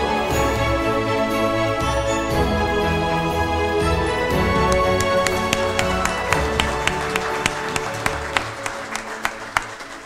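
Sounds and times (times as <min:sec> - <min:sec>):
instrumental music: 0:00.0 - 0:10.0
audience applauding: 0:04.4 - 0:10.0.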